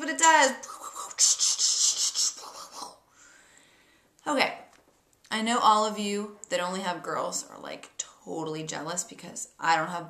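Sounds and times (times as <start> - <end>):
woman making breathy hissing noises: 0.6 - 3.4.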